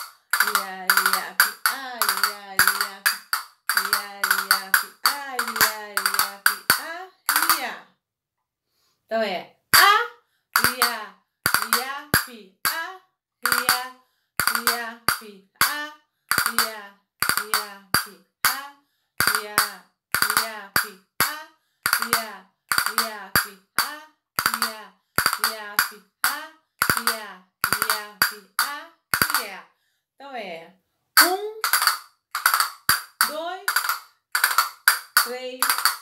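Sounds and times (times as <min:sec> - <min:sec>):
castanets clicking: 0:00.0 - 0:07.7, 0:10.6 - 0:12.2, 0:13.4 - 0:13.8, 0:14.4 - 0:15.2, 0:16.3 - 0:18.1, 0:19.2 - 0:20.9, 0:21.9 - 0:23.5, 0:24.4 - 0:26.0, 0:26.8 - 0:28.4, 0:29.2 - 0:29.4, 0:31.2 - 0:36.0
woman singing syllables: 0:00.0 - 0:07.8, 0:09.8 - 0:29.6, 0:31.2 - 0:31.9, 0:33.2 - 0:36.0.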